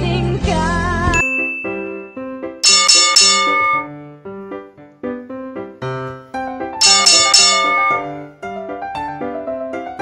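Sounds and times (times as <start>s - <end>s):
phone alarm chiming melody: 1.6s - 3.9s, 6.8s - 8.2s.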